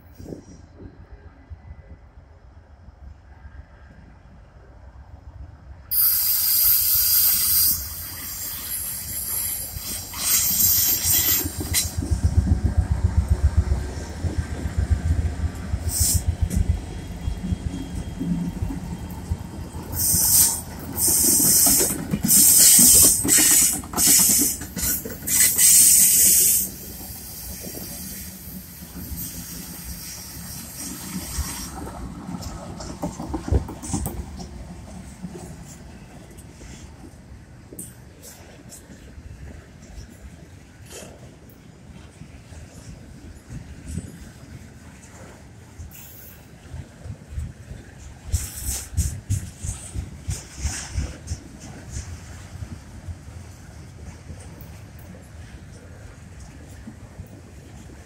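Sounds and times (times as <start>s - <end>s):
train wheel and rail noise: 0.0s - 58.0s
loud hiss bursts: 5.9s - 11.9s, 20.0s - 31.7s
locomotive engines rumbling: 7.8s - 58.0s.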